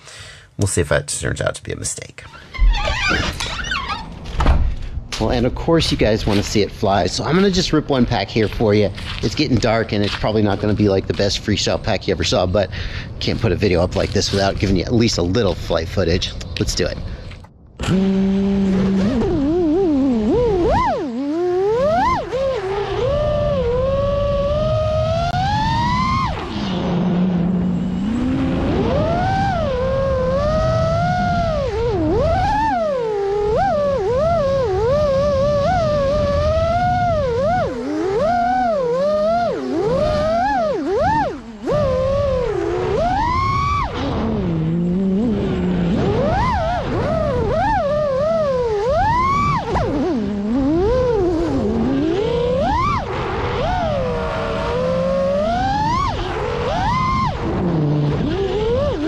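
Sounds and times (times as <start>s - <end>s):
quadcopter motors whining: 17.2s - 59.0s.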